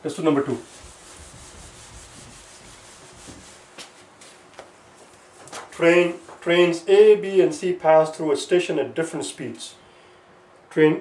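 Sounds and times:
eraser rubbing whiteboard: 0.3 - 3.9.

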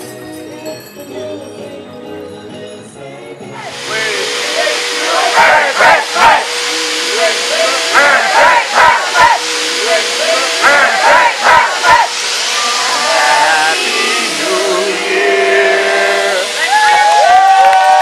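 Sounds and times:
people calling out: 3.6 - 6.5, 7.1 - 17.4
loud steady hiss: 3.6 - 18.0.

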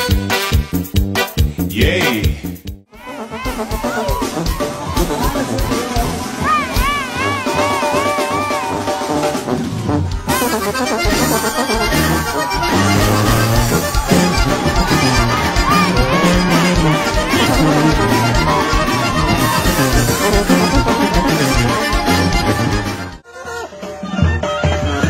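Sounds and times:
steady bass beat: 0.0 - 2.9, 10.3 - 23.2
accordion: 8.8 - 25.0.

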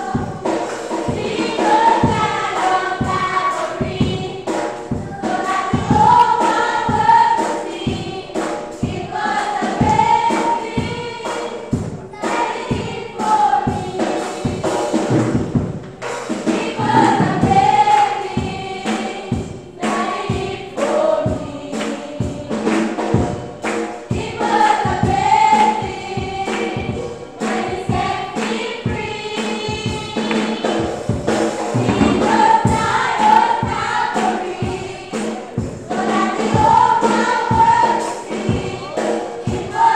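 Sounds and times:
choir singing gospel: 0.0 - 39.9
steady beat: 0.0 - 39.9.

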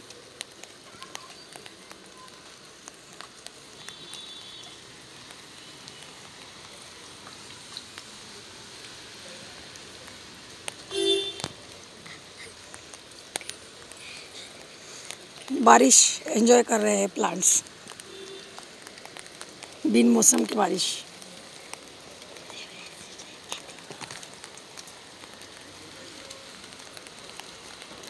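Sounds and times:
rain patter on plants: 0.0 - 28.0.

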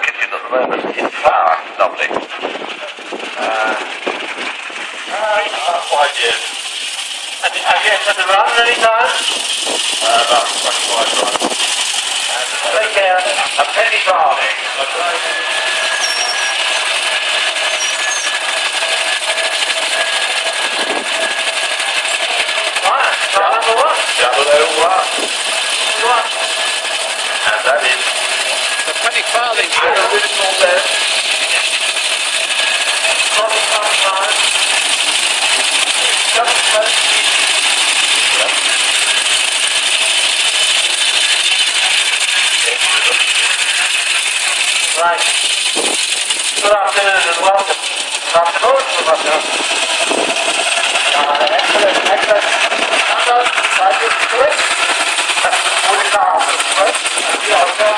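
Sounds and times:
old car engine chattering: 0.0 - 57.9
faint voices: 40.9 - 57.9.

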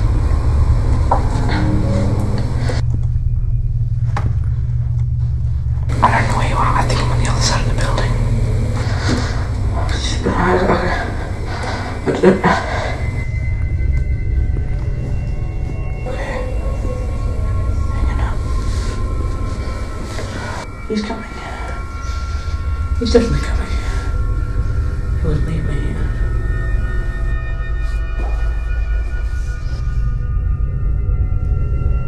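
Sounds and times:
low rumbling drone: 0.0 - 32.0.

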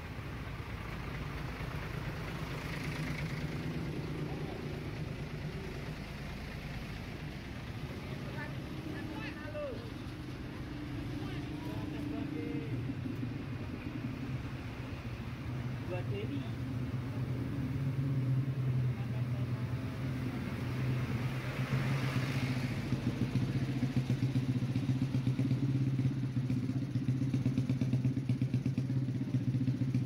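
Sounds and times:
diesel engine rumbling: 0.0 - 30.0.

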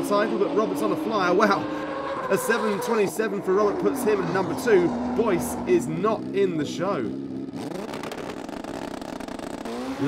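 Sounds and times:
motorcycle engine running: 3.5 - 10.0.

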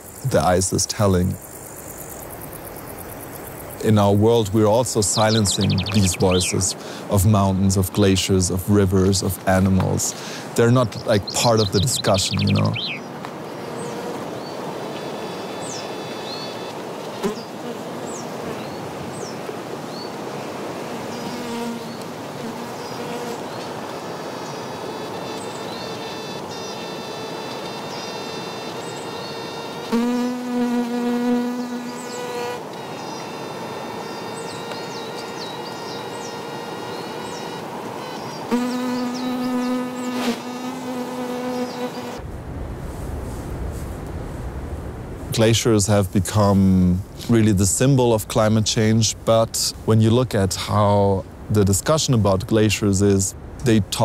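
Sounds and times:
steady hiss: 0.0 - 54.0
fly buzzing: 11.5 - 18.9, 20.3 - 42.2.

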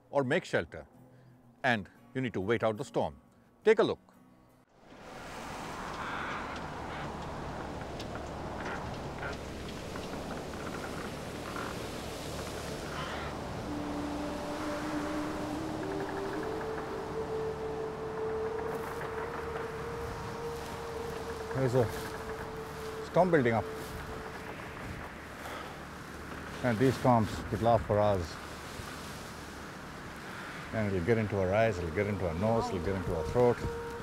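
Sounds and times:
low moaning howl: 5.0 - 26.6, 28.4 - 34.0.

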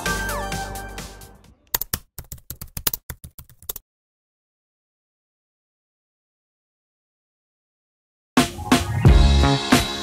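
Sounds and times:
keyboard key clicks: 1.7 - 3.8.

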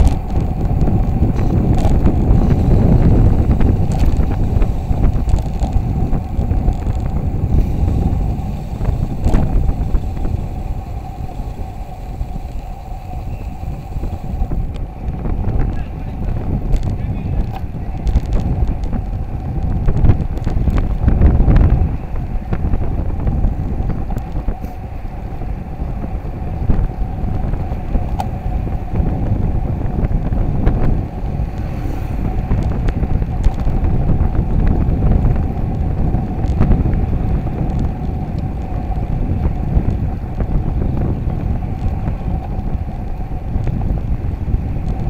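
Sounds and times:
wind buffeting microphone: 0.0 - 45.0.

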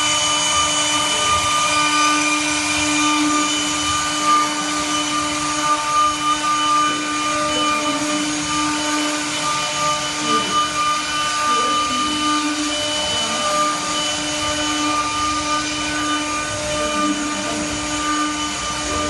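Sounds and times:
router bits rasping through wood: 0.0 - 19.0
router spindles whining: 0.0 - 19.0.

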